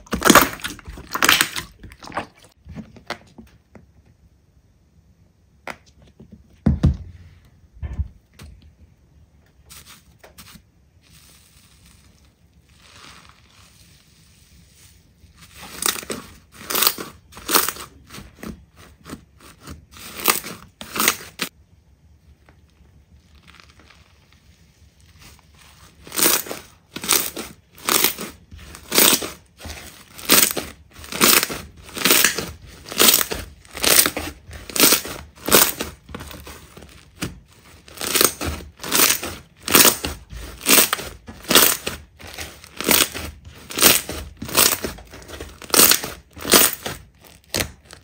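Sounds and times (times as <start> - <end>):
slime being squeezed by hand: 0.0 - 2.6, 9.7 - 18.4.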